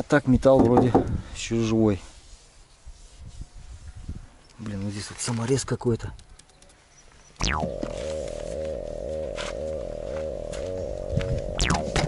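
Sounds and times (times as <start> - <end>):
low droning background music: 7.6 - 12.0.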